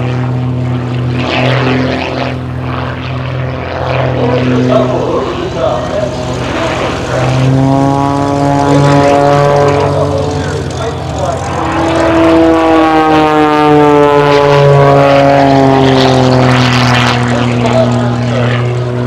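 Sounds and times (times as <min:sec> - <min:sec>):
propeller plane engine overhead: 0:00.0 - 0:19.0.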